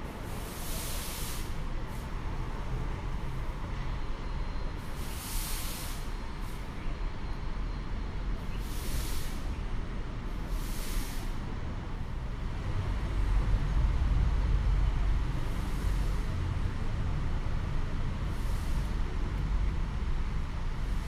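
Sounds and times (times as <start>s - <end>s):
low rumble of road traffic: 0.0s - 21.0s.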